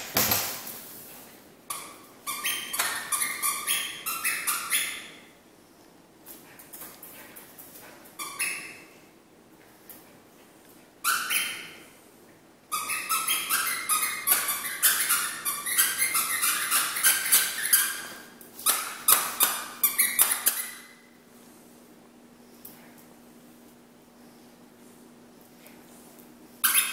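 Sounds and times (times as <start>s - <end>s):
squeaky toy squeaking: 1.7s - 5.2s, 8.2s - 8.8s, 11.0s - 11.7s, 12.7s - 21.0s, 26.6s - 26.9s.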